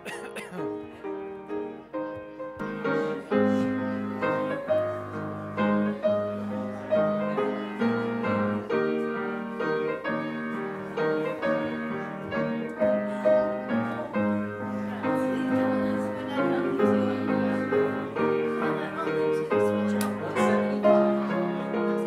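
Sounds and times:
piano playing hymn chords: 0.0 - 22.0.

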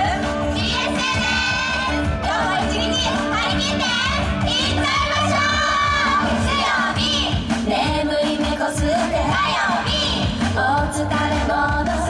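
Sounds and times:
upbeat pop backing track: 0.0 - 12.0.

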